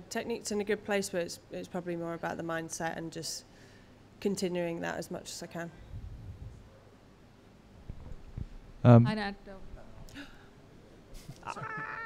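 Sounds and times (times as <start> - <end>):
room noise: 4.8 - 12.0.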